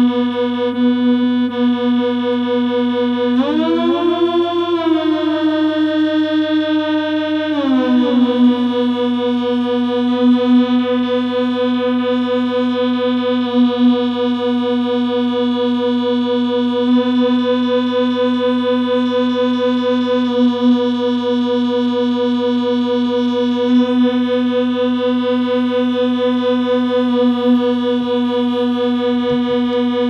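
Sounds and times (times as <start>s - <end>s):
synthesizer buzzy drone: 0.0s - 30.0s.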